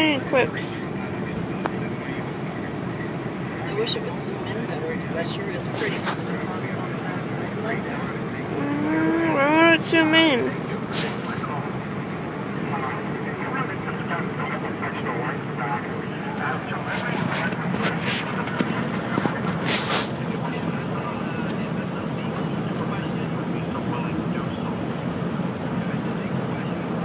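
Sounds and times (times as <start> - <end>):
speech: 0.0 - 2.8, 3.5 - 11.8, 12.5 - 27.0
car cabin road noise: 0.0 - 27.0
brief hisses: 10.6 - 11.4.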